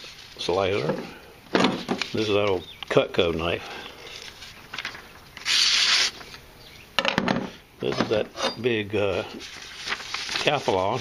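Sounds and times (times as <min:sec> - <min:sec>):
paper rasping: 0:05.4 - 0:06.2.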